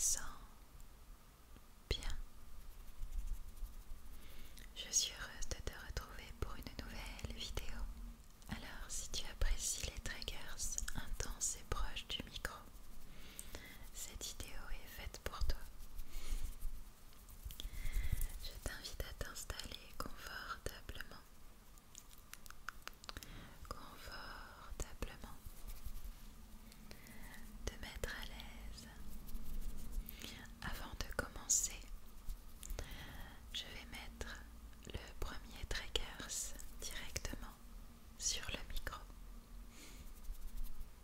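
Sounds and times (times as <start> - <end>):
person whispering: 0.0 - 0.6, 1.9 - 2.2, 4.6 - 7.9, 8.5 - 12.7, 13.4 - 15.7, 17.6 - 21.3, 22.9 - 25.6, 26.7 - 29.1, 30.0 - 31.9, 32.6 - 37.6, 38.2 - 39.1.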